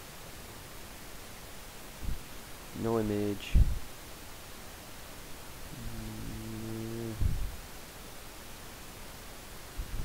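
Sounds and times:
man humming low: 0:05.7 - 0:07.6.

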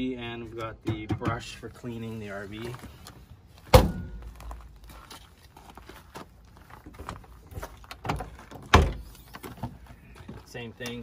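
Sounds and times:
storage bay door thunks: 0:08.1 - 0:09.1.

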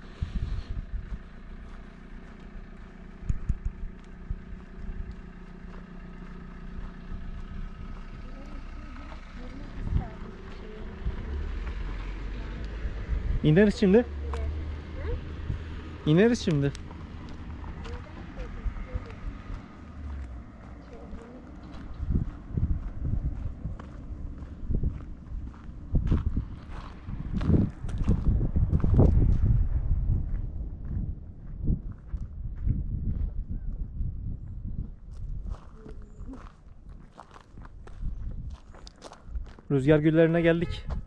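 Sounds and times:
low rumble: 0:00.0 - 0:41.0
footsteps crunching on dirt path: 0:00.9 - 0:13.0, 0:15.4 - 0:41.0.

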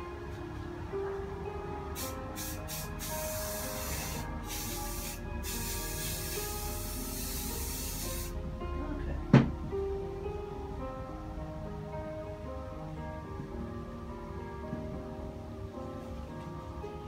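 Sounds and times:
background music: 0:00.0 - 0:17.0
aerosol spray can hissing: 0:02.0 - 0:08.4.

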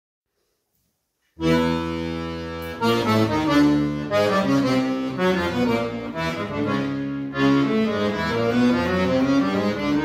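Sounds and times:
accordion chord: 0:01.4 - 0:10.0.

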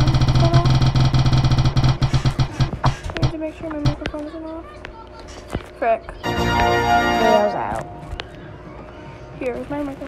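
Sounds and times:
spinning wheel ticking: 0:00.0 - 0:04.0.

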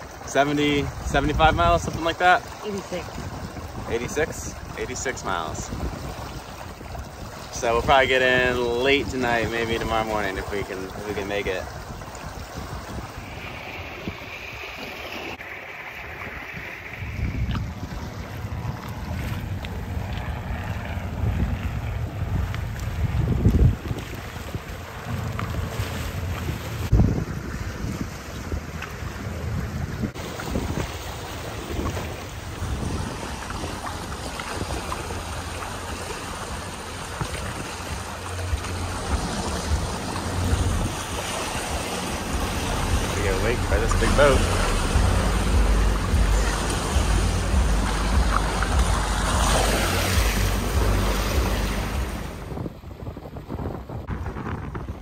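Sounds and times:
water splashing along hulls: 0:00.0 - 0:55.0
wind buffeting microphone: 0:00.0 - 0:55.0.

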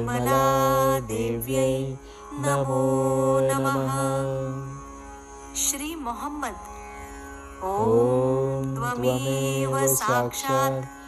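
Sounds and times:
mantra chanting with music: 0:00.0 - 0:11.0.

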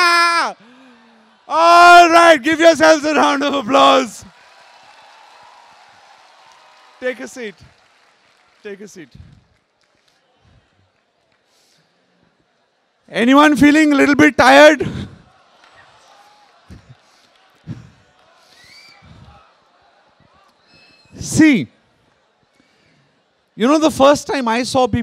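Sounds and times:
audience applause: 0:00.6 - 0:12.7, 0:15.2 - 0:20.5
murmur of seated audience: 0:14.8 - 0:23.6.

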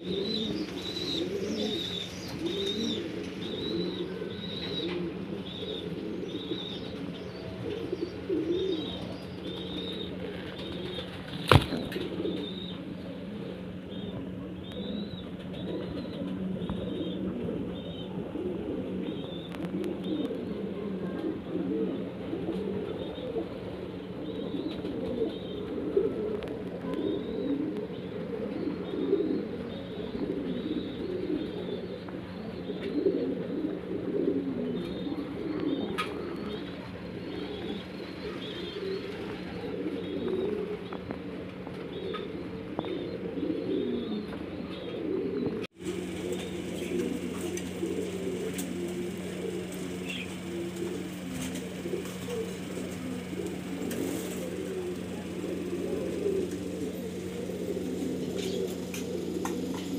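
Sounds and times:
low steady hum: 0:00.0 - 0:59.9
pigeons cooing: 0:00.0 - 0:59.9.

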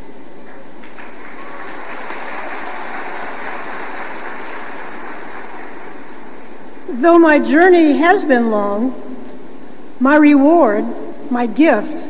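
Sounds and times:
audience applauding: 0:00.8 - 0:06.3.

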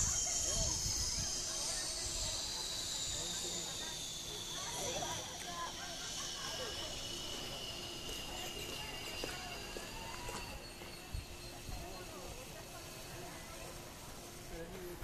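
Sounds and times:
faint voices talking: 0:00.0 - 0:15.0
high-pitched whine: 0:00.0 - 0:15.0.

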